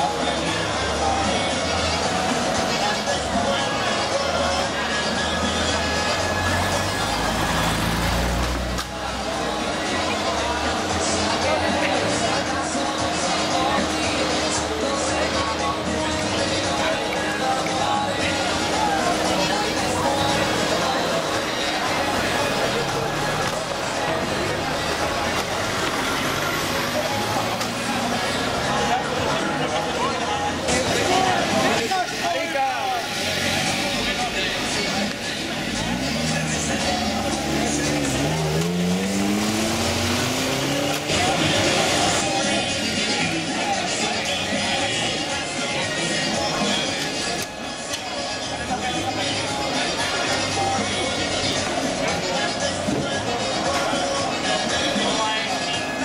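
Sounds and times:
crowd noise: 0:00.0 - 0:56.0
low street rumble: 0:00.0 - 0:56.0
music from bars: 0:00.0 - 0:56.0
people talking: 0:00.0 - 0:56.0.

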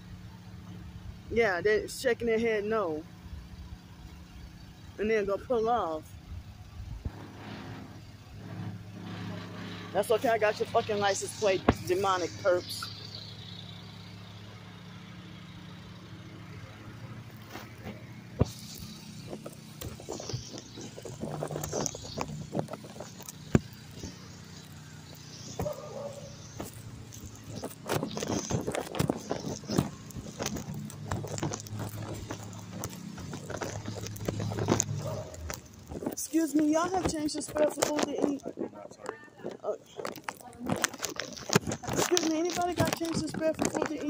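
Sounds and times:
vehicle engine humming: 0:00.0 - 0:44.0
footsteps: 0:17.3 - 0:44.0.

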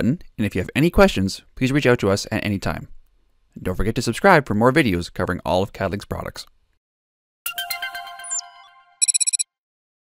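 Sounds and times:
ringing chime tones: 0:07.5 - 0:09.4
rapid high beeping pulses: 0:08.2 - 0:09.4.

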